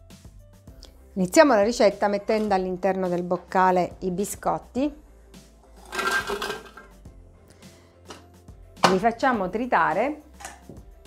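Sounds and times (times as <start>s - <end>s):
biscuits rattling into metal bowl: 5.8s - 6.9s.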